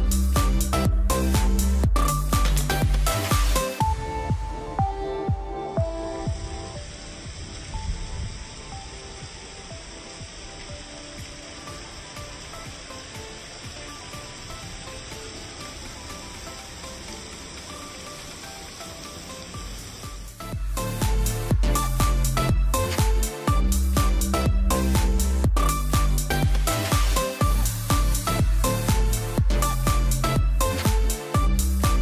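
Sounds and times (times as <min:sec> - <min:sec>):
electronic background music: 0:00.0 - 0:32.0
heavy rain falling: 0:00.1 - 0:04.8, 0:06.0 - 0:32.0.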